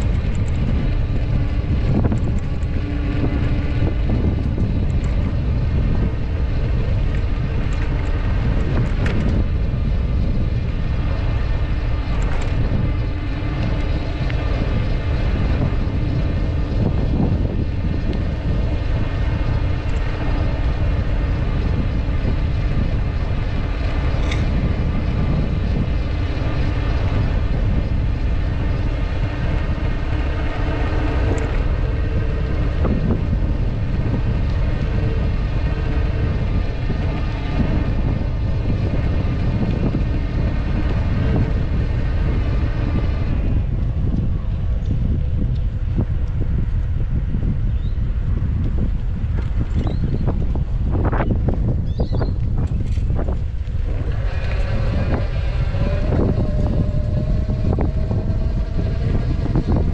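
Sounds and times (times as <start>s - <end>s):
bike tyres on path: 0.0s - 59.9s
wind buffeting microphone: 0.0s - 59.9s.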